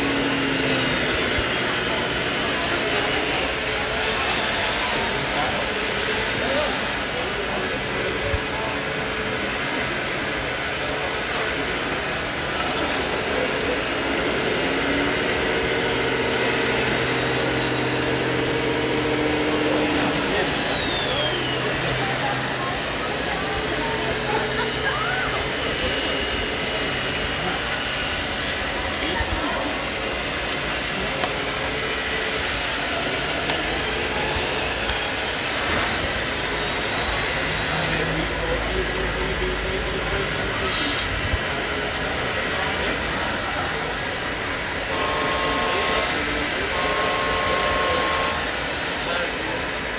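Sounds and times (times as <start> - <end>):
chatter of many people: 0.0 - 49.9
low pitched machine hum: 13.2 - 35.1.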